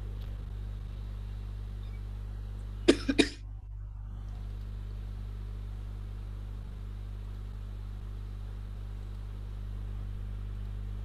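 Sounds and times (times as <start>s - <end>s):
low hum: 0.0s - 11.0s
person coughing: 2.9s - 3.4s.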